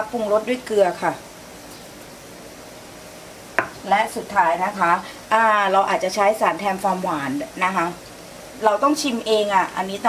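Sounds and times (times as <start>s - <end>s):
woman speaking: 0.0s - 1.2s, 3.8s - 8.0s, 8.6s - 10.0s.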